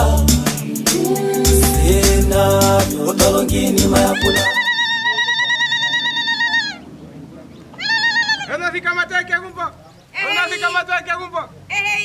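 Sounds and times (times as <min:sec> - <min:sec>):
woman's high-pitched celebratory cries: 0:04.2 - 0:06.8.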